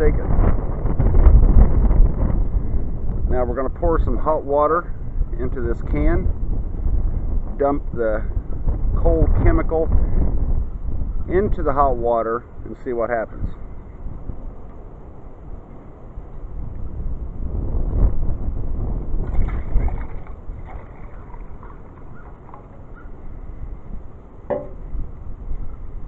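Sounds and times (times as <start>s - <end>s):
wind buffeting microphone: 0.0s - 26.0s
water splashing into tin can: 19.2s - 23.0s.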